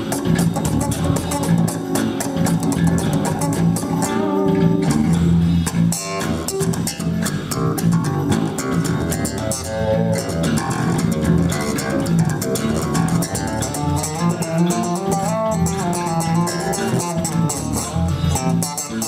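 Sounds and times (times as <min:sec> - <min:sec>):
electric bass guitars jamming: 0:00.0 - 0:19.0.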